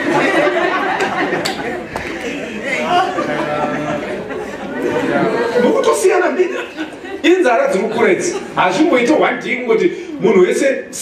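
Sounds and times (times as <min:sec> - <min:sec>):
several voices talking at once: 0:00.0 - 0:11.0.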